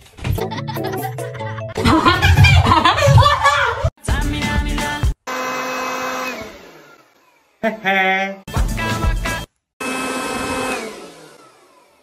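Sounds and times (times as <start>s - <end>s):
electric blower motor whining: 5.3s - 7.6s, 9.8s - 12.0s.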